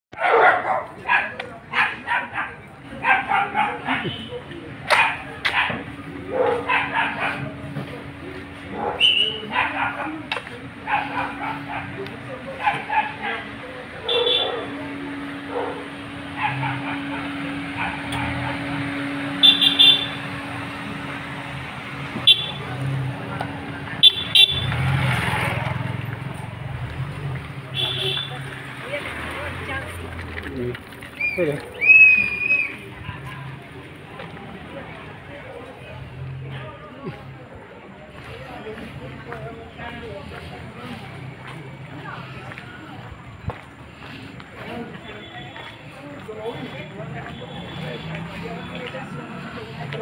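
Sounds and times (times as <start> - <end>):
dog barking: 0.2 - 4.3, 4.9 - 7.6, 8.7 - 14.8, 15.4 - 18.6
cars running by: 0.2 - 50.0
car engine approaching: 4.5 - 50.0
car horn toots: 19.3 - 20.4, 22.2 - 22.7, 24.0 - 24.8, 27.8 - 28.4.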